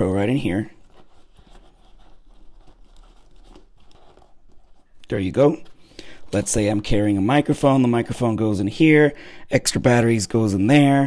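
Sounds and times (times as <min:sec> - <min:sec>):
fabric rustling: 0:00.3 - 0:07.2
small scrapes and ticks: 0:00.8 - 0:05.8.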